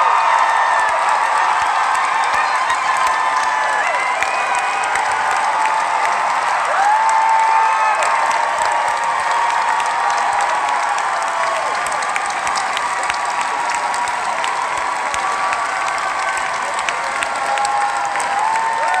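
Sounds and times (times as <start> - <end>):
audience applauding: 0.0 - 19.0
cheers and shouts: 0.0 - 19.0.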